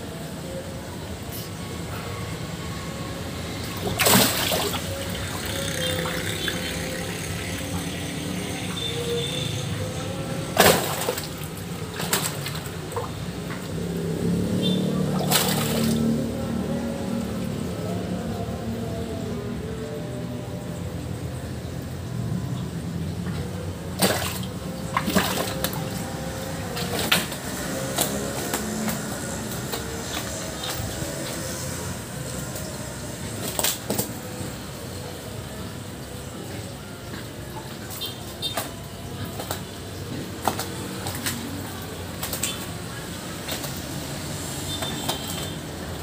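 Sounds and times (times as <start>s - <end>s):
fish splashing in water: 3.4s - 18.2s, 23.0s - 46.0s.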